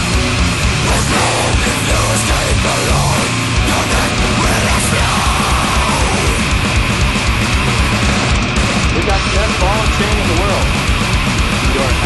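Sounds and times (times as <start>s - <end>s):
grindcore metal band playing: 0.0s - 12.0s
person vocalizing over band: 0.8s - 6.4s.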